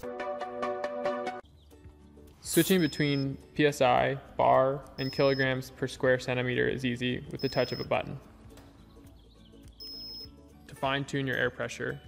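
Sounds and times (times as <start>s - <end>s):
faint background music: 1.4s - 12.0s
high-pitched electronic beep: 2.6s - 3.4s, 5.0s - 5.6s, 7.4s - 8.0s, 9.8s - 10.3s.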